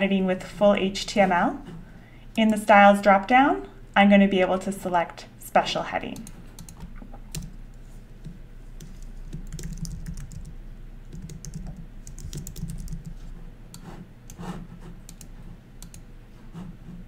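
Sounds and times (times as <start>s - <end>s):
low steady hum: 0.0s - 17.0s
keyboard typing clicks: 6.2s - 7.6s, 8.2s - 16.1s.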